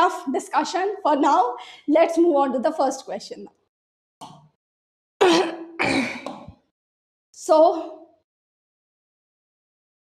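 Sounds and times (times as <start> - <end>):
woman clearing throat and coughing: 5.2 - 6.6.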